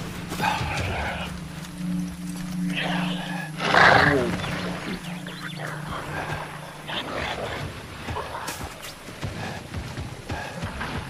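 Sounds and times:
steady low drone: 0.0 - 11.0.

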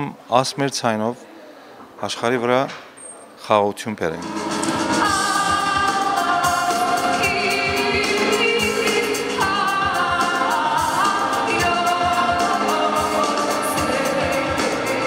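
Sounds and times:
drums: 4.2 - 15.0
woman singing long notes: 5.0 - 15.0.

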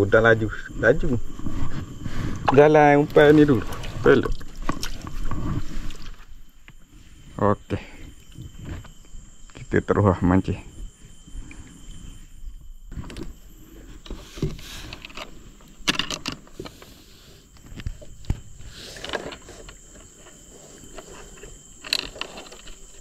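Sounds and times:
small clicks and rustles: 14.0 - 23.0.

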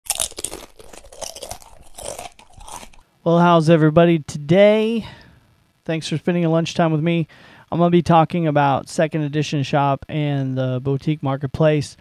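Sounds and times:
crunching: 0.0 - 3.0.

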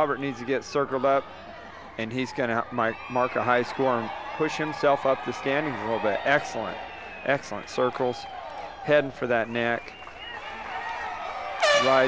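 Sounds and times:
faint arena crowd noise: 0.0 - 12.0
spectator whooping: 10.0 - 12.0.

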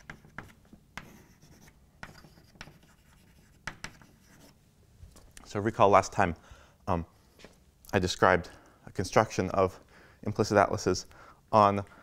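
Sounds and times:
chalk tapping on board: 0.0 - 4.5
chalk scratching on blackboard: 0.0 - 4.6.

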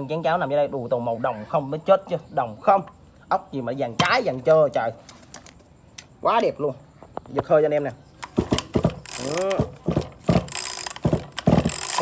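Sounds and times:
chainsaw recoil starter pulled: 8.2 - 12.0.

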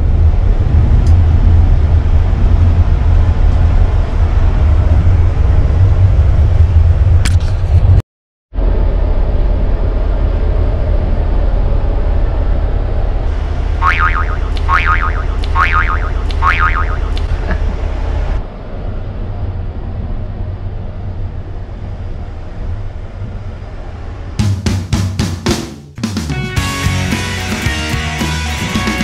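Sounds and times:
train rumble and hiss: 0.0 - 7.3, 8.6 - 13.8, 17.2 - 25.3
short falling tones: 13.7 - 17.3
drum-led music: 13.9 - 17.2, 24.4 - 29.0.

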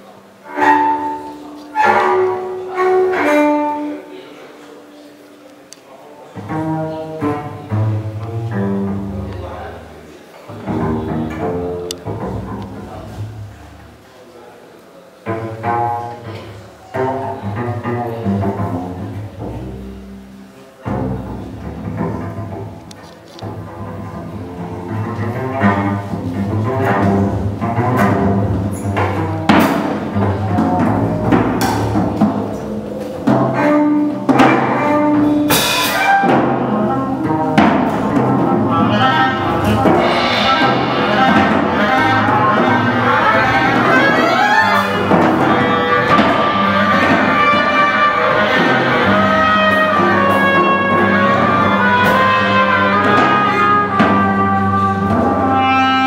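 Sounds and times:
plucked double bass: 0.0 - 4.7, 6.3 - 14.1, 15.2 - 56.0
drums: 23.5 - 56.0
clarinet playing melody: 38.3 - 56.0
cymbal strokes: 38.9 - 49.8.

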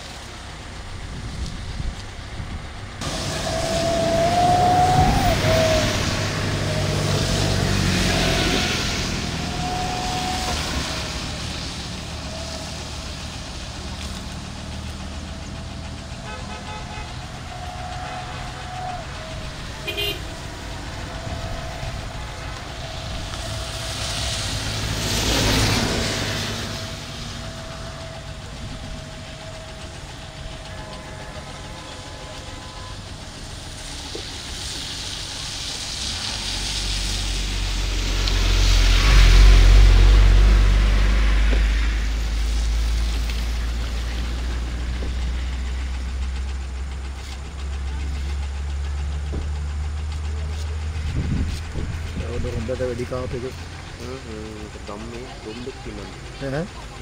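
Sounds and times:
vehicles passing on wet road: 0.0 - 57.0.

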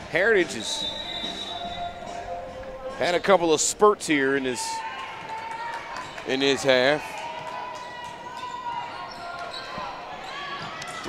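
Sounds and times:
spectators' voices: 0.0 - 11.0.

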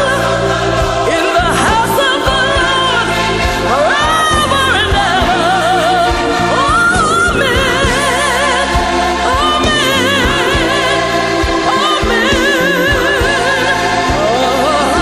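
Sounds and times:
gospel singing with vibrato: 0.0 - 15.0
sustained bass chords: 0.0 - 15.0.

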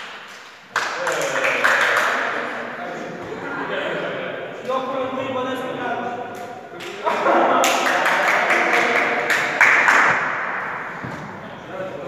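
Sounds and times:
group of people clapping: 0.0 - 2.7, 6.8 - 11.1.

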